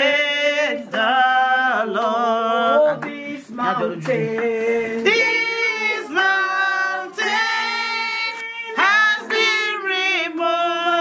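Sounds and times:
high voices singing together: 0.0s - 11.0s
sharp hand claps: 4.0s - 5.3s.

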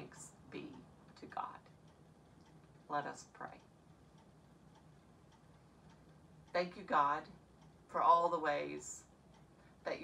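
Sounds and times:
faint light ticks: 0.7s - 7.8s.

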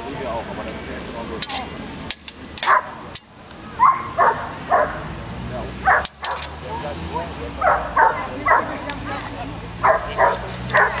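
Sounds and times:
dog barking: 2.7s - 3.0s, 3.8s - 5.0s, 5.8s - 8.8s, 9.8s - 11.0s.

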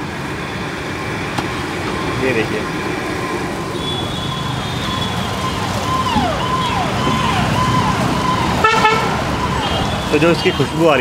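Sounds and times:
busy street noise: 0.0s - 11.0s
repeating tone dipping in pitch: 3.2s - 8.5s
vehicle horn toot: 3.8s - 5.2s, 8.6s - 10.8s.

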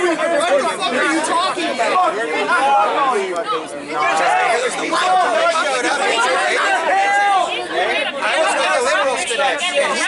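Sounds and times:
people arguing: 0.0s - 10.0s.

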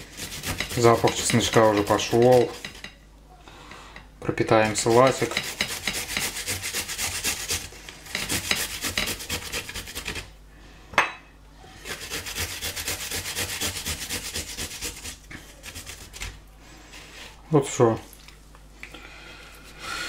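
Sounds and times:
garlic grated on metal grater: 0.0s - 2.9s, 4.6s - 10.3s, 11.8s - 16.3s.

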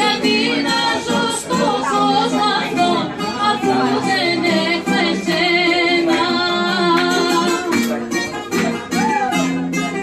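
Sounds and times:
woman singing: 0.0s - 7.8s
acoustic guitar: 0.0s - 10.0s
bouzouki: 0.0s - 10.0s.

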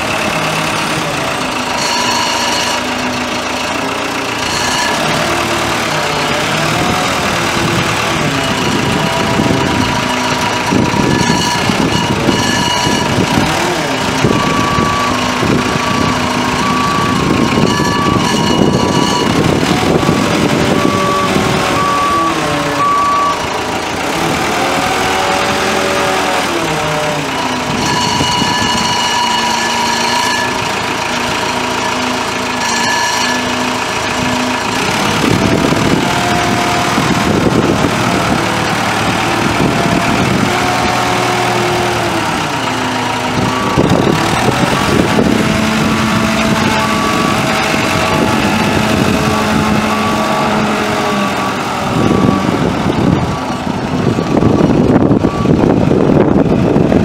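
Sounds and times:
diesel engine running: 0.0s - 57.0s
backup alarm beeping: 6.5s - 23.6s, 24.8s - 37.9s, 42.5s - 51.3s.

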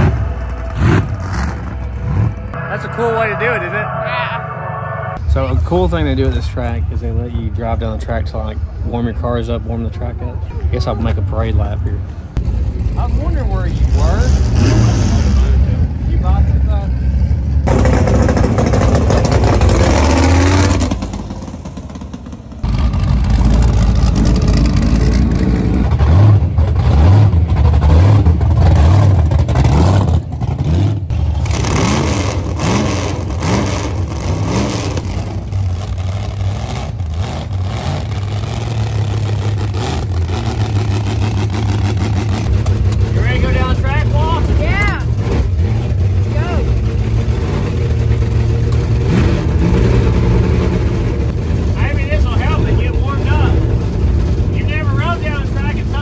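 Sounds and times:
car engines idling and revving: 0.0s - 56.0s
people talking: 2.6s - 4.6s, 5.2s - 12.0s, 13.0s - 16.9s, 43.0s - 45.1s, 46.2s - 46.8s, 51.8s - 53.6s, 54.5s - 56.0s.

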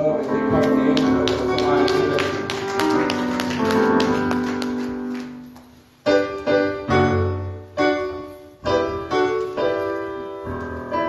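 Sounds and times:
keyboard chords: 0.0s - 5.4s.

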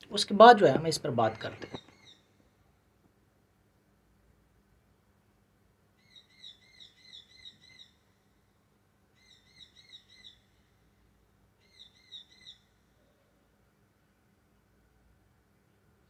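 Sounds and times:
bird chirping: 1.1s - 2.4s, 6.0s - 8.4s, 9.1s - 10.8s, 11.6s - 13.4s.

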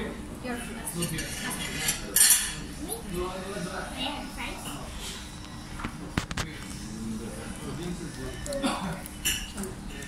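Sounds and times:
plates and cutlery clinking: 1.0s - 2.7s, 9.1s - 9.7s.

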